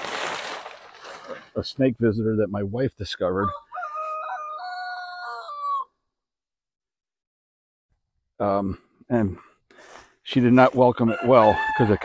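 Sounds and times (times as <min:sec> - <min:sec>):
rooster crowing: 0:03.5 - 0:06.0, 0:11.1 - 0:12.0.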